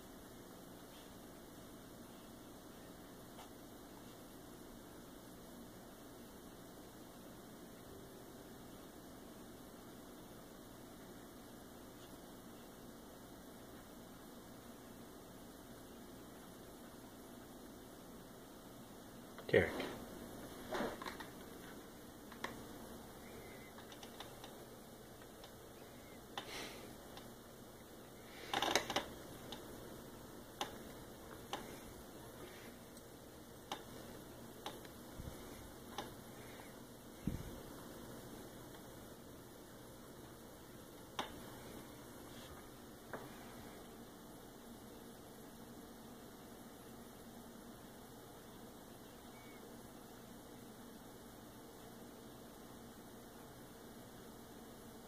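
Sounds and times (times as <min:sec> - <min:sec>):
room hiss: 0:00.0 - 0:55.0.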